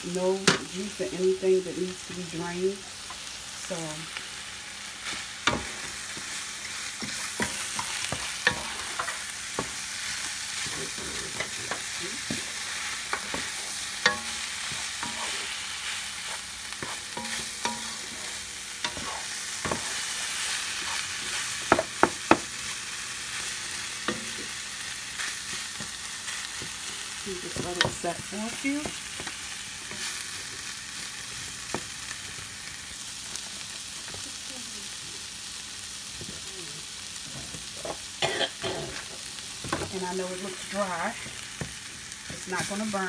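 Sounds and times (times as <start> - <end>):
meat sizzling in a pan: 0.0 - 43.0
wooden spoon scraping a pan: 7.0 - 21.8
spoon knocking against pan: 21.7 - 22.5.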